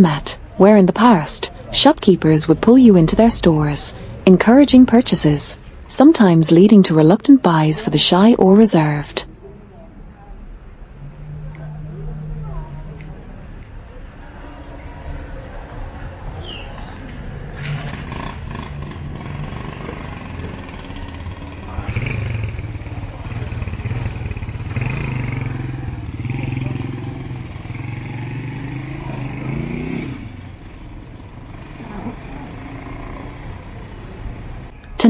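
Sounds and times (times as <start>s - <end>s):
passers-by talking: 0.0s - 35.0s
small motorcycle engine running: 17.6s - 34.2s.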